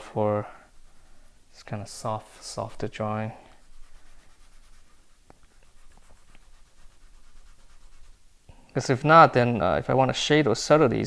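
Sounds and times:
fingertip rubbing on paper: 3.5 - 8.3.

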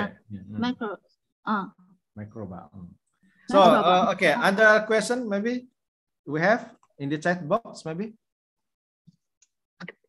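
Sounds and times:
person speaking: 3.5 - 5.1.

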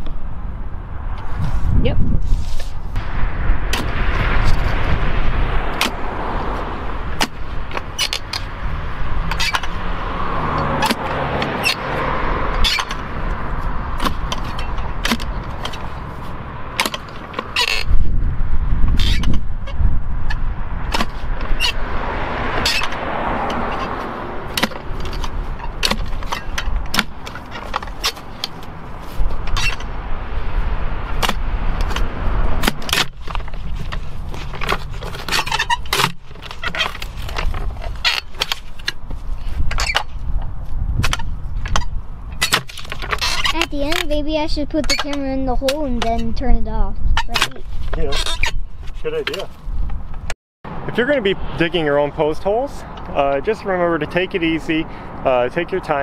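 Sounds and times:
low rumble: 0.0 - 16.8
post hole digger scraping dirt: 3.7 - 18.0, 31.1 - 40.2.

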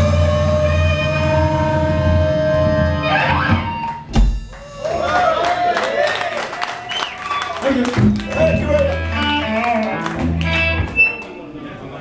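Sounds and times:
rock band holding a chord: 0.0 - 4.8.

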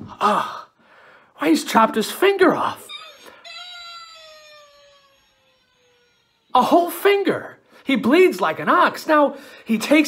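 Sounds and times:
man's falsetto whine sliding down: 2.8 - 6.8.

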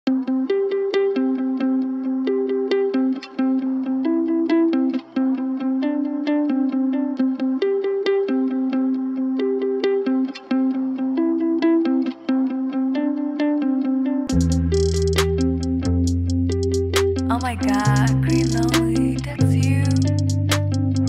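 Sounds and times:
plucked guitar melody: 0.1 - 21.0.

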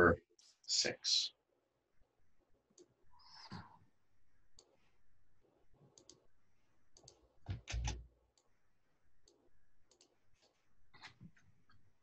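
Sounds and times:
computer mouse clicks: 5.9 - 6.2, 7.0 - 8.5, 9.2 - 10.2.

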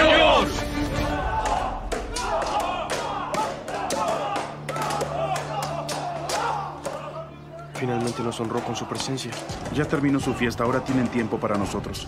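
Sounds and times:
background music with low note: 0.0 - 12.0.

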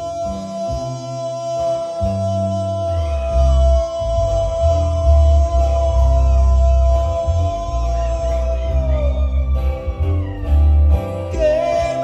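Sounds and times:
deep bass notes: 0.0 - 12.0
guitar: 0.0 - 12.0.

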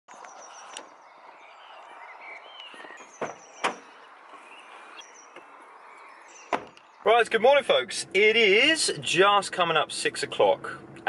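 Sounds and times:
sharp knocks: 3.2 - 3.9.

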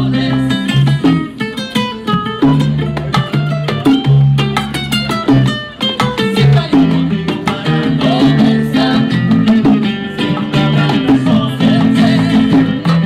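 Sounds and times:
salsa music on guitar bass and bongos: 0.0 - 13.0.

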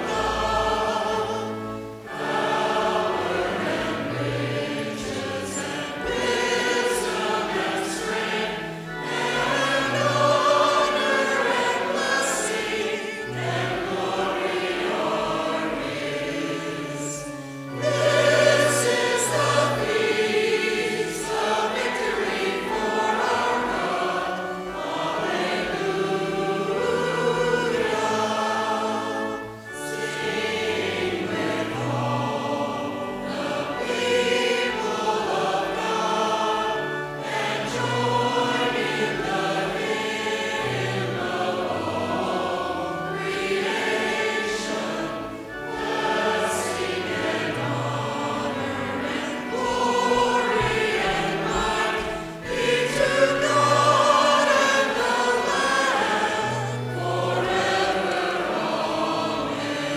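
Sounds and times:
congregation and choir singing hymn: 0.0 - 59.9
pipe organ: 0.0 - 59.9.

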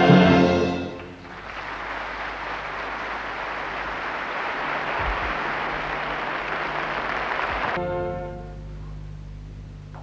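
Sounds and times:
large audience applauding: 0.9 - 7.8.

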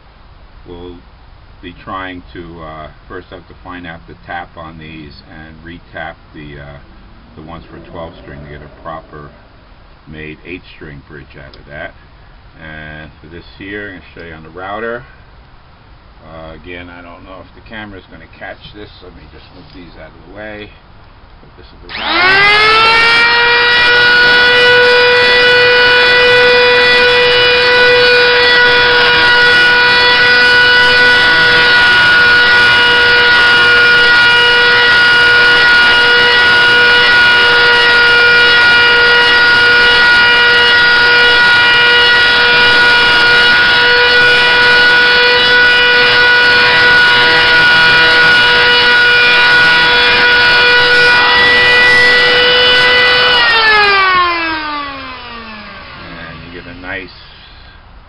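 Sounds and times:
electric router whining: 6.3 - 9.8, 21.9 - 57.4
router spinning down: 21.9 - 56.7.

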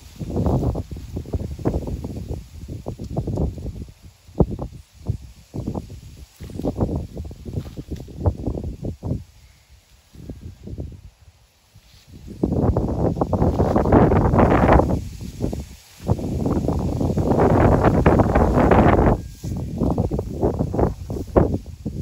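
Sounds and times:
dry grass and dirt crackling: 0.0 - 22.0.

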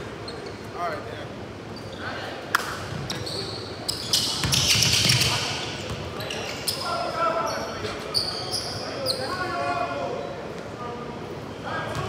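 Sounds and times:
sneakers squeaking on hardwood: 2.9 - 9.2.

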